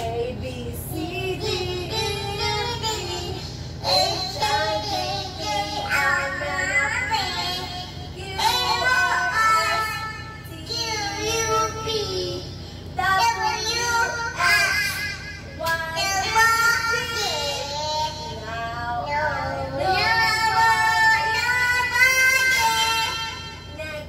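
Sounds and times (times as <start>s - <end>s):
steady low hum: 0.0s - 24.0s
toddler singing into microphone: 15.9s - 24.0s.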